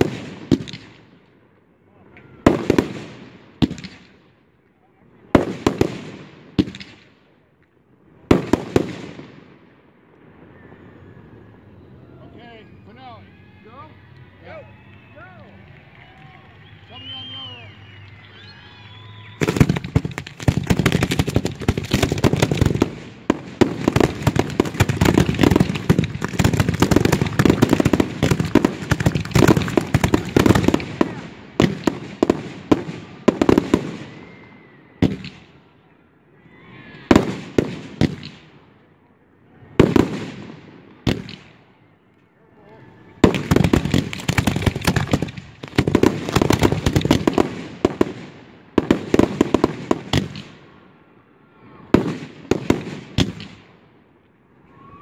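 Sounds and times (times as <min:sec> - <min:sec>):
fireworks firing: 0:00.0 - 0:11.9, 0:15.8 - 0:35.8, 0:37.1 - 0:38.8, 0:39.6 - 0:41.9, 0:43.1 - 0:51.0, 0:51.8 - 0:54.2.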